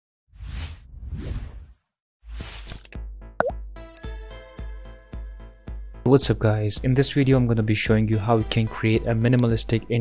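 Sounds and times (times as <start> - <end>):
bright chime: 4.0 - 5.4.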